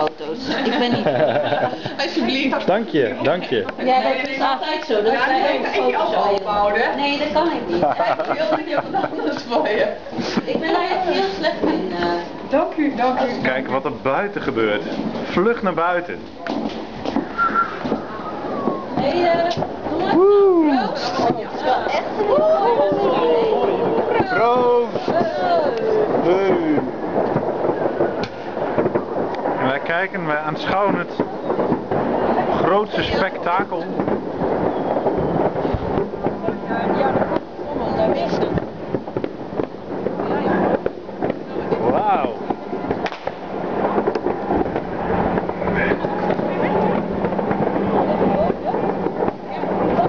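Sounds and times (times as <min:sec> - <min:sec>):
fireworks crackling and banging: 0:00.0 - 0:50.0
short high whistle-like tone: 0:17.4 - 0:18.4
people talking faintly: 0:31.0 - 0:50.0.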